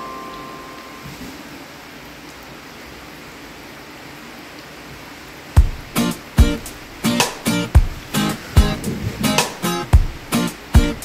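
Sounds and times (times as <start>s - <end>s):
music note: 0.0s - 1.2s
strummed guitar: 5.6s - 11.0s.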